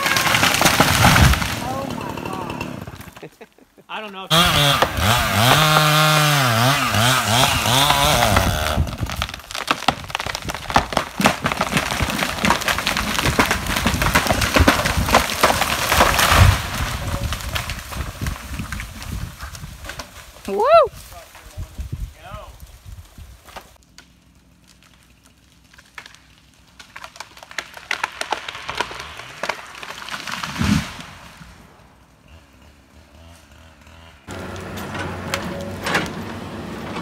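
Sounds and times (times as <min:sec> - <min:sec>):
falling tree thud: 0:00.0 - 0:01.8
wood cracking and snapping: 0:00.0 - 0:02.1, 0:04.3 - 0:22.0, 0:22.6 - 0:31.4
chainsaw cutting: 0:00.0 - 0:03.6, 0:04.2 - 0:19.2, 0:23.5 - 0:37.0.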